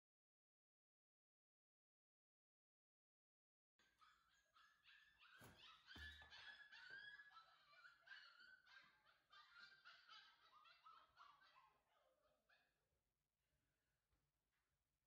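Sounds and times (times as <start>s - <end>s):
puppy whining and yipping: 3.8s - 12.1s.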